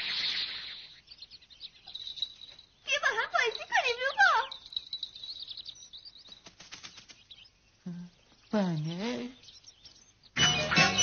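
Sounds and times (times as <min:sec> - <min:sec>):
high squeaky chirps: 0:00.0 - 0:11.0
patter of light ticks: 0:01.8 - 0:07.6.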